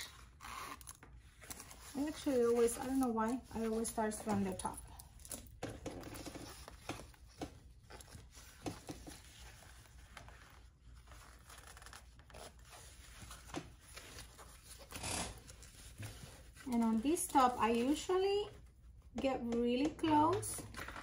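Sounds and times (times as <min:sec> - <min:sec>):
canvas rustling and crinkling: 0:00.0 - 0:18.5.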